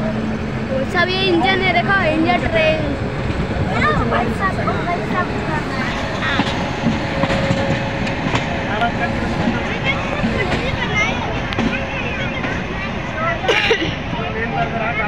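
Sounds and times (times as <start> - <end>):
people's voices: 0.0 - 15.0
train rolling along tracks: 0.0 - 15.0.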